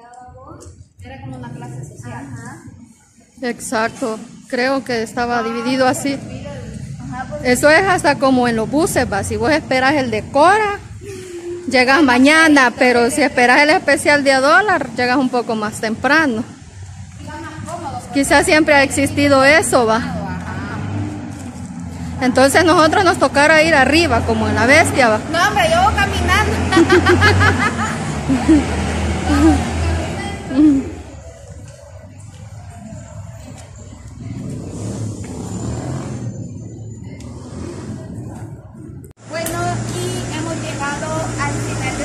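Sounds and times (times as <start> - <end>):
woman speaking: 3.4 - 10.8, 17.2 - 20.9
faint voices: 28.2 - 42.0.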